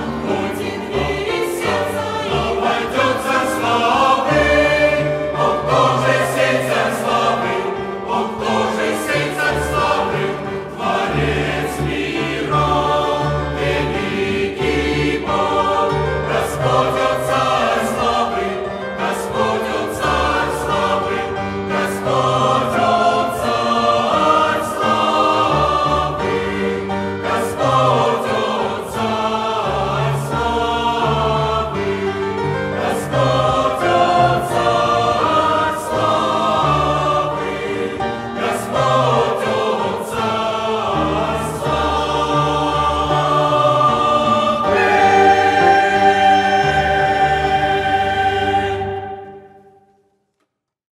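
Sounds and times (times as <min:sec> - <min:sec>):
mixed choir singing a hymn: 0:00.0 - 0:49.8.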